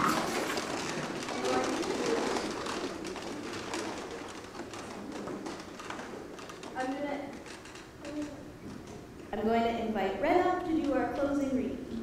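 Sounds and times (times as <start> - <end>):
chairs knocking and creaking: 0.0 - 9.4
people rustling and shuffling: 0.0 - 9.6.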